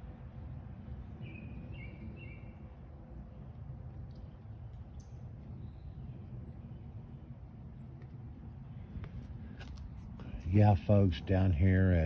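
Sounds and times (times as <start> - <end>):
low outdoor rumble: 0.0 - 12.0
bird chirping: 0.4 - 9.2.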